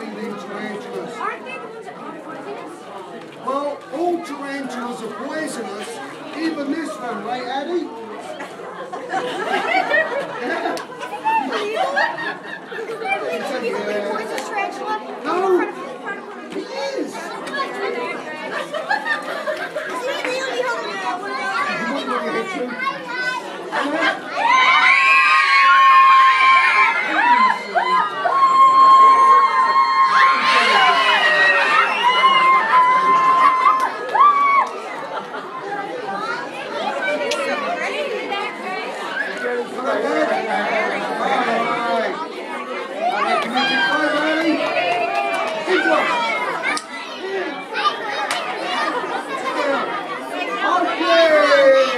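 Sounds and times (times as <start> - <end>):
children chattering: 0.0 - 51.9.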